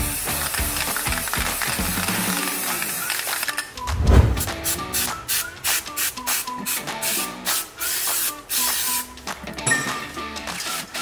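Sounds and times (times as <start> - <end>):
aerosol can spraying: 0.0 - 3.6, 4.3 - 9.1
background music: 0.0 - 11.0.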